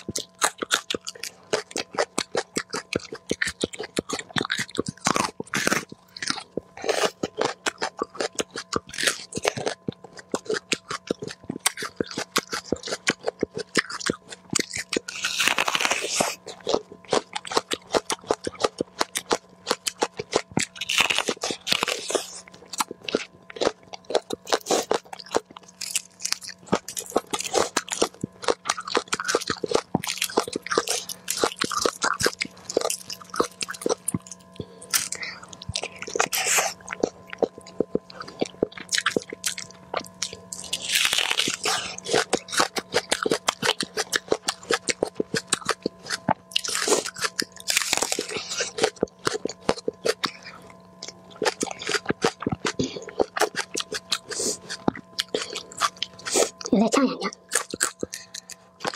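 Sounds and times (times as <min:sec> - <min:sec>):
crunching raw vegetables: 0:00.0 - 0:58.9.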